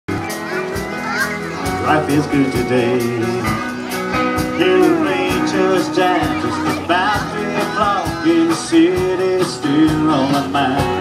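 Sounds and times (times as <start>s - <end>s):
listeners chattering: 0.1s - 11.0s
live band playing country music: 0.1s - 11.0s
lead singer singing: 1.7s - 11.0s.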